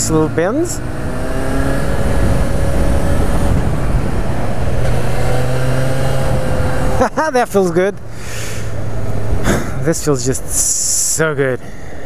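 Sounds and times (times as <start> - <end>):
wind rush: 0.8 - 7.1.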